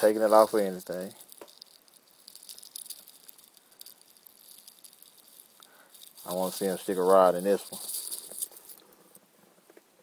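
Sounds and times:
faint light clicks and rattles: 0.0 - 9.9
low hiss: 0.0 - 10.0.

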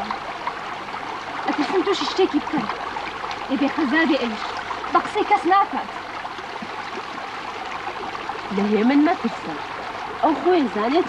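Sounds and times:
shallow stream running: 0.0 - 11.0.

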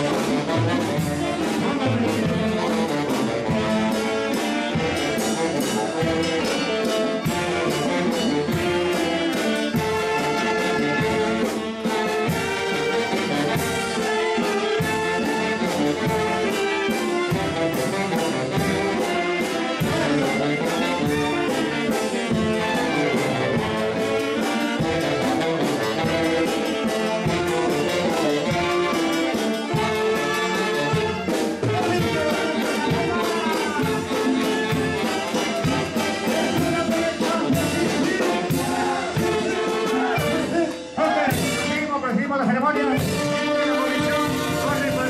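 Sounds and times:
brass and reed dance music: 0.0 - 45.0.

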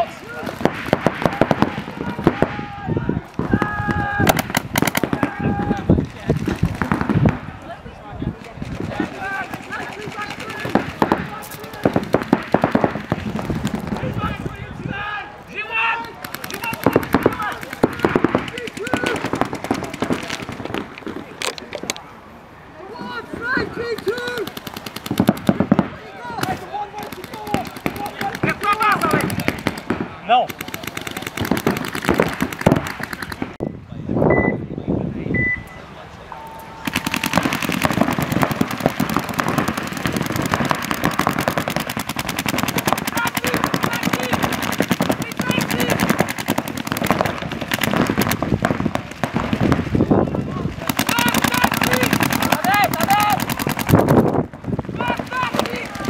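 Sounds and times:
players shouting: 0.0 - 7.9, 8.7 - 21.4, 22.0 - 33.6, 36.0 - 49.6, 50.2 - 56.0
paintball markers firing: 4.3 - 5.4, 8.4 - 14.1, 16.1 - 22.0, 24.0 - 33.6, 36.9 - 49.9, 50.8 - 56.0.

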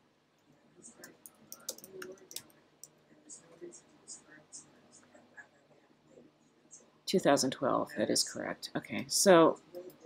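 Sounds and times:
computer keyboard key clicks: 1.2 - 2.5.

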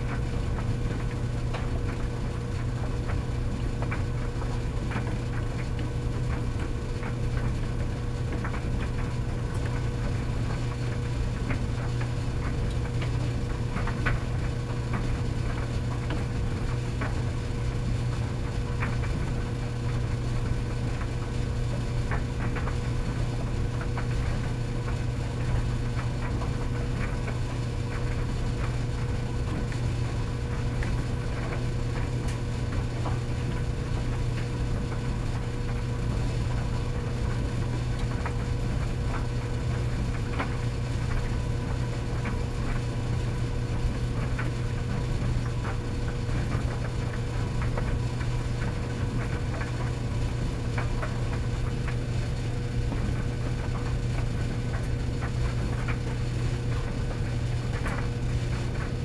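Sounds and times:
tumble dryer humming: 0.0 - 59.0.

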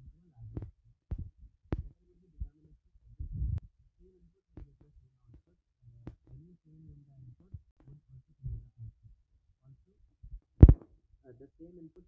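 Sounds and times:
low thuds with sharp clicks: 0.4 - 2.5, 10.2 - 10.9.

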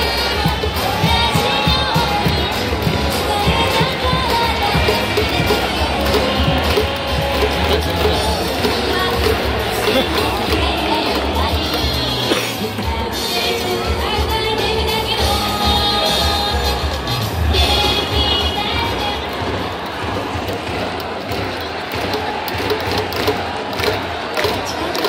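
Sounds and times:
crowd cheering: 0.0 - 25.0
music over loudspeakers: 0.0 - 25.0.

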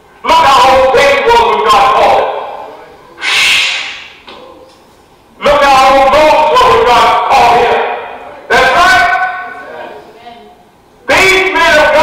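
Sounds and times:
loud breathy exhale: 3.2 - 4.2.

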